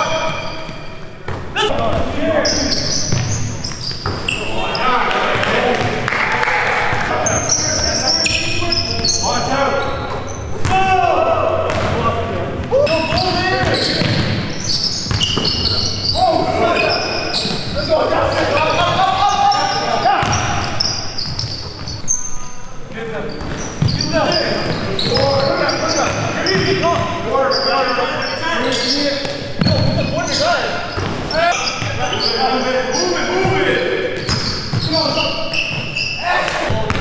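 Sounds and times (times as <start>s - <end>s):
sneakers squeaking: 0.0s - 6.1s, 6.8s - 37.0s
players calling out: 0.0s - 22.6s.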